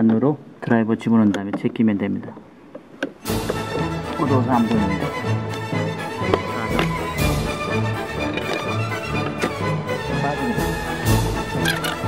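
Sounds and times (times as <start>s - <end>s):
background music with low beat: 3.2s - 12.0s.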